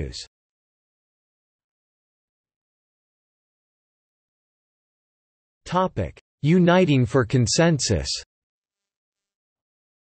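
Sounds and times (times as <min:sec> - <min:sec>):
synthesized text-to-speech voice: 0:00.0 - 0:00.3, 0:05.7 - 0:08.3.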